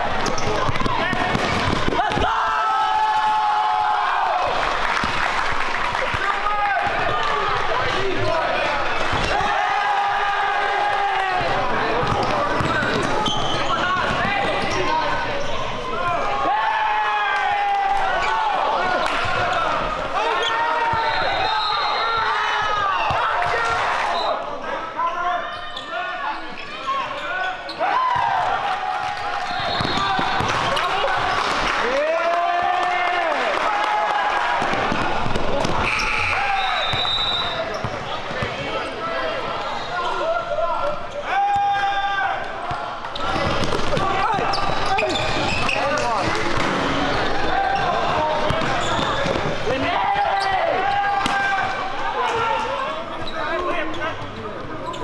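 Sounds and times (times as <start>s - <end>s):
players calling out: 6.0s - 55.0s
basketball bouncing on court: 11.9s - 14.2s, 48.4s - 49.5s.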